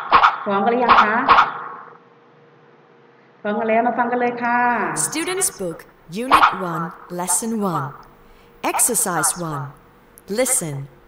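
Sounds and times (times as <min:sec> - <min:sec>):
woman speaking: 0:04.4 - 0:11.0.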